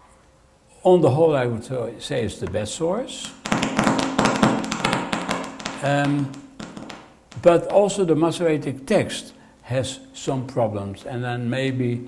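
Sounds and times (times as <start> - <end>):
faint steady hum: 0.0 - 12.0
rapid light taps: 3.4 - 7.8.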